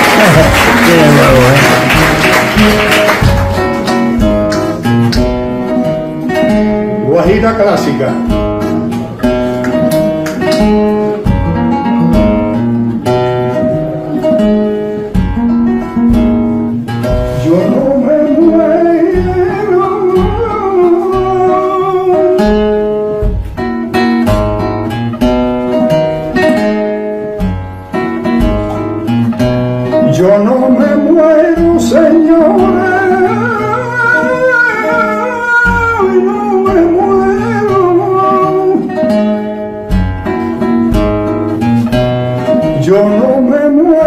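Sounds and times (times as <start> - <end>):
man singing flamenco: 0.0 - 9.8, 17.0 - 24.2, 27.9 - 44.0
flamenco guitar: 0.0 - 44.0.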